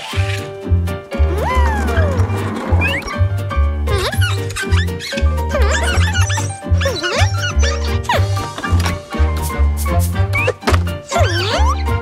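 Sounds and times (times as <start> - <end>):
upbeat cartoon music: 0.0 - 12.0.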